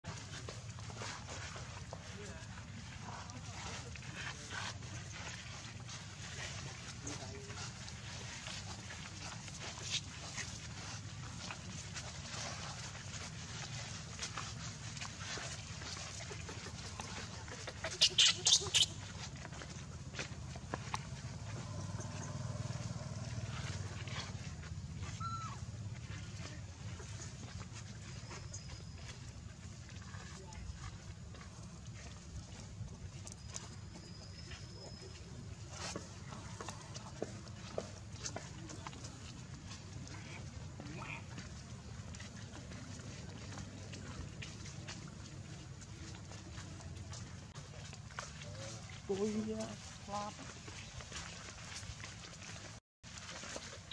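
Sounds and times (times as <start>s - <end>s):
monkey squeals: 17.8s - 19.1s, 25.2s - 25.6s.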